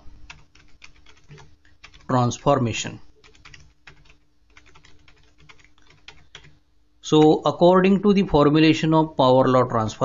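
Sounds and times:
keyboard typing: 0.3 - 2.5, 3.2 - 6.6.

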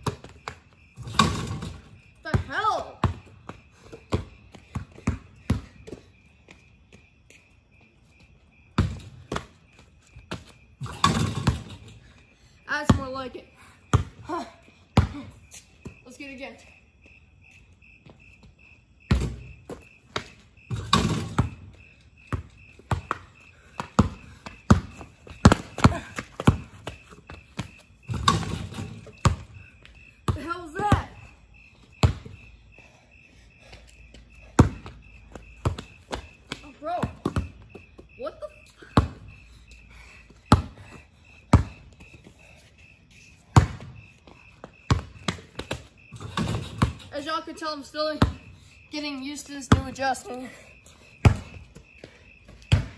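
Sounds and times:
basketball bouncing on concrete: 0.0 - 7.3, 8.7 - 11.9, 12.8 - 16.0, 18.0 - 31.3, 31.9 - 32.5, 34.4 - 39.4, 40.2 - 42.2, 43.4 - 47.4, 48.1 - 48.6, 49.4 - 50.2, 50.9 - 52.9
crickets chirring: 0.0 - 52.9.

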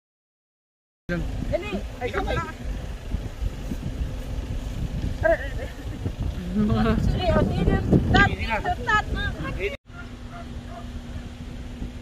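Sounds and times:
people talking: 1.1 - 2.6, 5.2 - 5.8, 6.4 - 9.8
wind buffeting microphone: 1.1 - 12.0.

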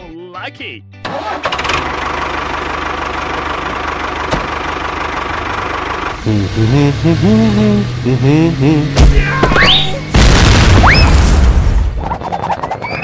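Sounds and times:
tractor engine running: 1.1 - 10.1.

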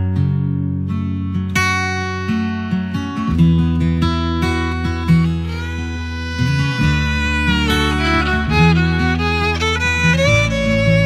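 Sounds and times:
acoustic guitar strumming: 0.0 - 11.0
violin melody: 5.0 - 11.0.

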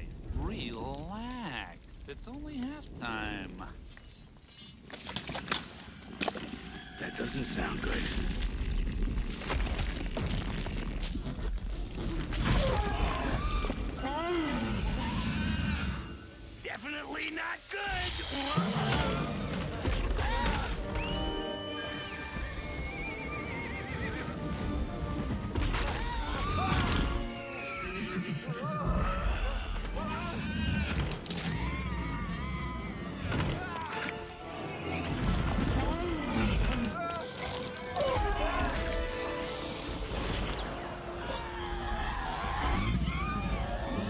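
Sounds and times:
dramatic orchestral music: 18.8 - 43.0.

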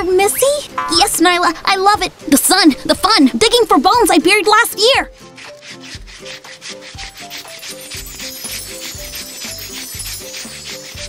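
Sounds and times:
light background music: 0.0 - 11.0
cartoon paws digging scratching: 3.8 - 11.0.

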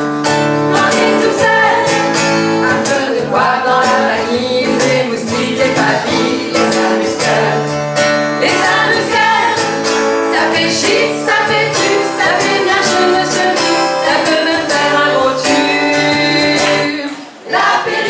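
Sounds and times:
acoustic guitar strumming chords: 0.0 - 18.0
voices singing: 0.7 - 18.0.

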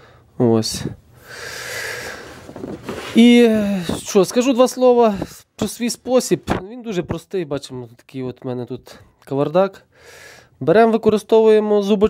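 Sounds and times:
person breathing: 0.0 - 0.4, 1.1 - 3.1, 9.9 - 10.6.

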